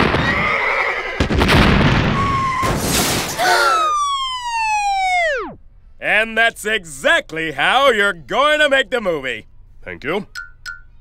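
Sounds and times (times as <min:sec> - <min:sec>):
wavering high cry: 0:03.4 - 0:05.5
cartoon sound effects: 0:03.4 - 0:05.6.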